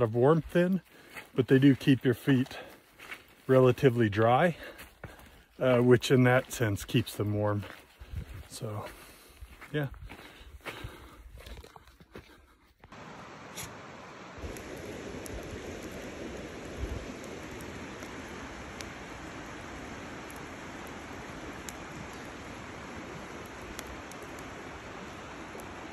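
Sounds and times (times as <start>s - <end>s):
hiss of campfire flames: 0.0s - 11.3s, 12.8s - 25.9s
fire pops and crackles: 12.8s - 25.9s.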